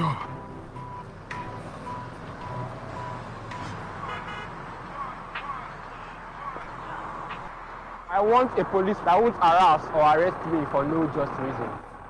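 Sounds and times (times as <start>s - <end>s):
street traffic: 0.0s - 12.0s
car horn toot: 1.9s - 4.6s.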